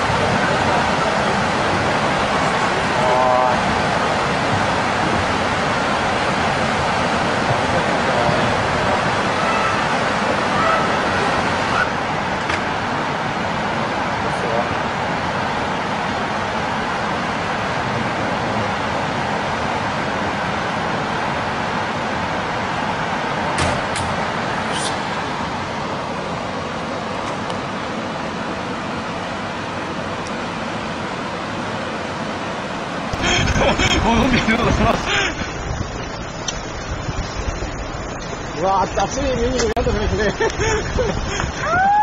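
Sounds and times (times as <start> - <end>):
floodwater rushing: 0.0 - 42.0.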